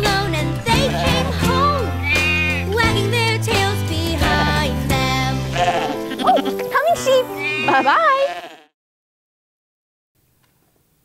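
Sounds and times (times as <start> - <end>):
person bleating like a sheep: 0.7 - 1.4, 5.5 - 6.6, 7.4 - 8.7.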